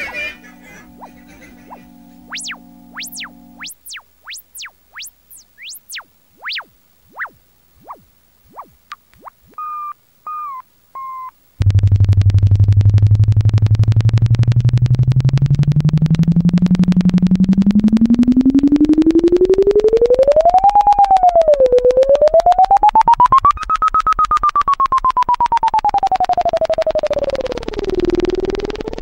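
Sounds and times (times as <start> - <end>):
pulsing buzzy synth tone: 0.0 - 10.0
synthesizer blips sliding in pitch: 0.0 - 11.3, 15.4 - 23.6
wavering synth tones: 0.0 - 11.3.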